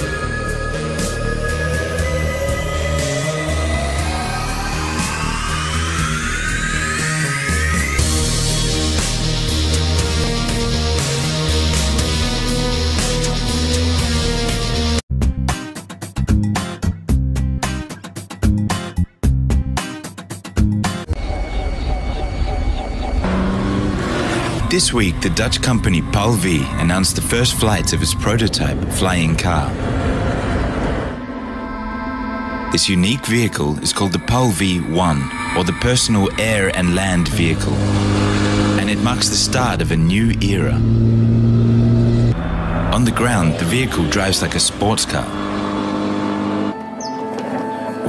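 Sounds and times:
flying car engine and rotor rumble: 21.1s - 32.7s, 34.0s - 46.8s.

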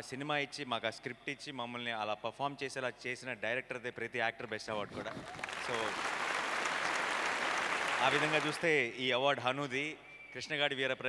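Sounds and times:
audience applause: 5.0s - 8.8s.

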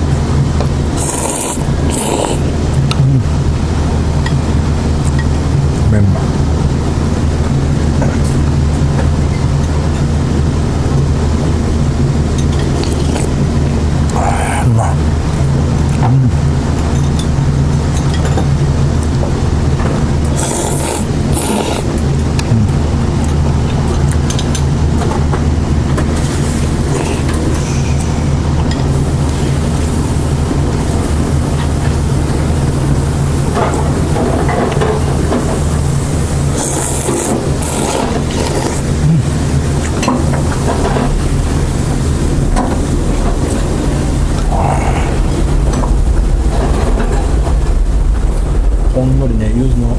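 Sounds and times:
low mechanical hum: 0.0s - 49.9s
man slurping noodles: 0.9s - 3.4s, 12.7s - 13.5s, 14.1s - 15.1s, 20.3s - 22.8s, 26.4s - 28.7s, 36.4s - 40.0s, 44.4s - 45.6s.

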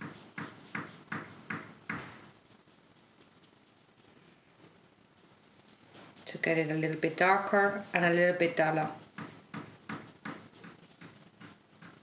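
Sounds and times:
paintbrush dabbing on paper: 0.0s - 12.0s.

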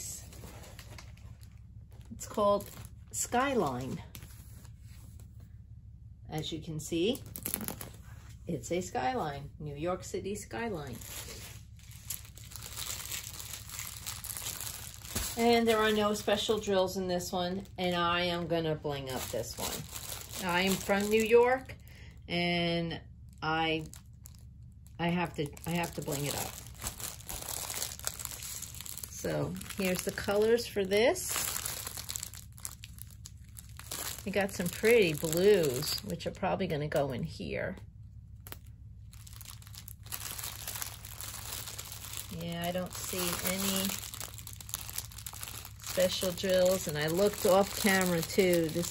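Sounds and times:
plastic film crinkling: 0.0s - 4.9s, 7.1s - 8.4s, 10.6s - 21.8s, 23.7s - 36.3s, 38.4s - 48.9s.

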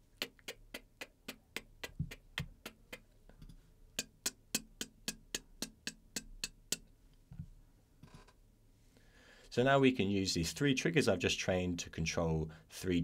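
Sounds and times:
vocal hi-hat sounds: 0.0s - 3.2s, 4.0s - 6.9s
vocal snare hits: 0.0s - 3.2s, 3.9s - 6.9s.

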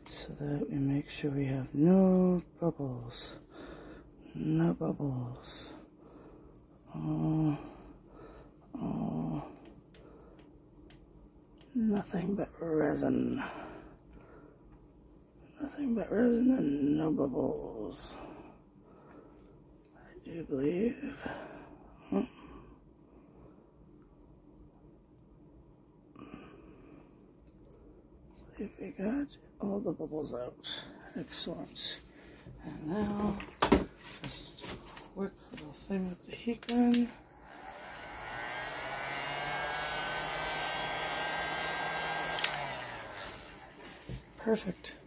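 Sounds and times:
heat gun fan whining: 35.5s - 45.0s
heat gun switch click: 41.5s - 43.4s.

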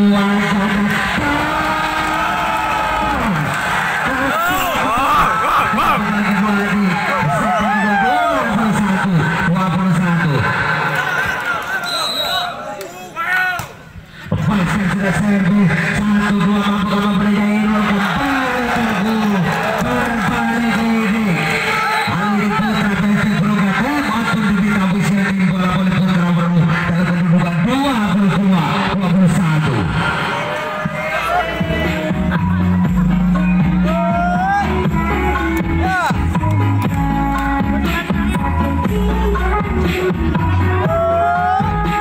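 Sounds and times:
people shouting: 0.5s - 6.2s, 7.0s - 8.5s, 17.4s - 22.7s, 33.8s - 34.8s.

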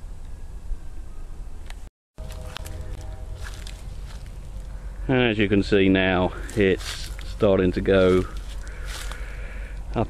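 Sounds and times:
steady low rumble: 2.2s - 10.0s.

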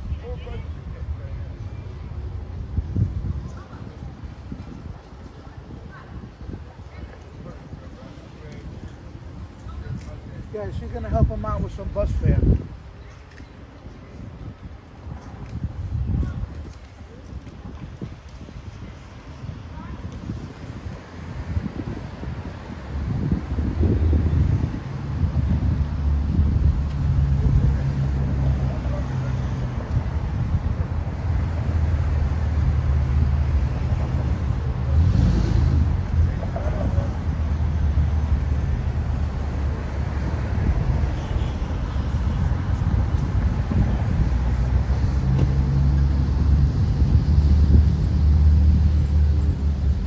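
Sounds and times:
street traffic rumble: 0.0s - 50.0s
wind buffeting microphone: 0.0s - 50.0s.

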